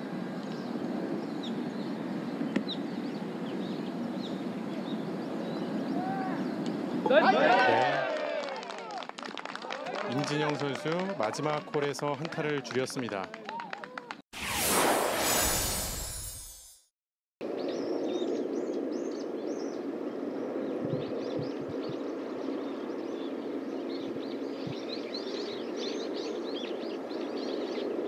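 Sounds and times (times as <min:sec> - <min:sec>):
loud swoosh: 0:14.4 - 0:16.9.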